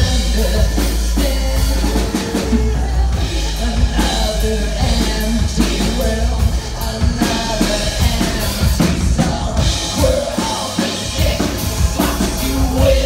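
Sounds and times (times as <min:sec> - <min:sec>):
acoustic drum kit: 0:00.0 - 0:13.0
deep bass: 0:00.0 - 0:13.0
man singing into a microphone: 0:00.0 - 0:13.0.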